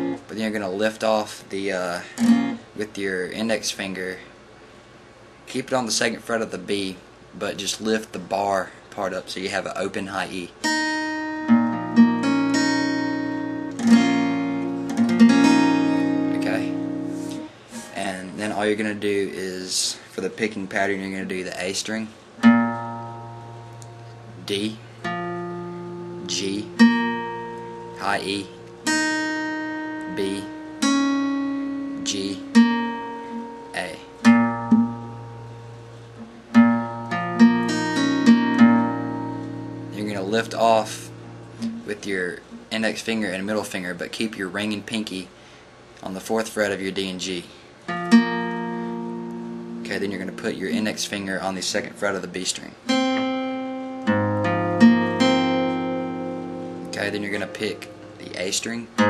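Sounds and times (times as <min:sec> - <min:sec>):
acoustic guitar notes ringing: 0:00.0 - 0:01.0, 0:02.0 - 0:02.9, 0:10.5 - 0:19.5, 0:22.3 - 0:43.0, 0:47.8 - 0:59.0.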